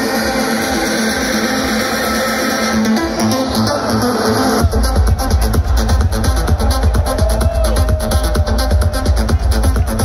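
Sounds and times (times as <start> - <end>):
large outdoor crowd noise: 0.0 - 10.0
music from sound system: 0.0 - 10.0.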